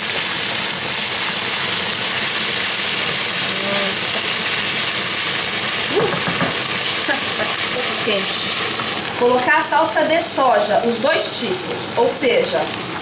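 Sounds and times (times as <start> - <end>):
meat and onion sizzling in pan: 0.0 - 13.0.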